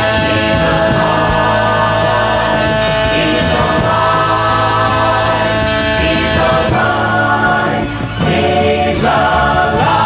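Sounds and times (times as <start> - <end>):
choir singing in harmony: 0.0 - 10.0.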